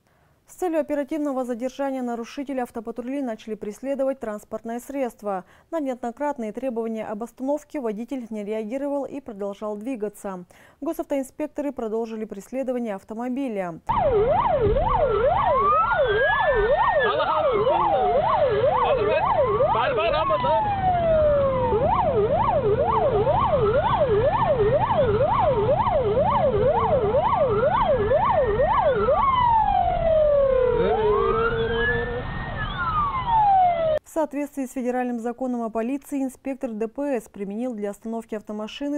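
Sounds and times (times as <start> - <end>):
siren wail: 13.9 - 34.0
siren yelp: 13.9 - 34.0.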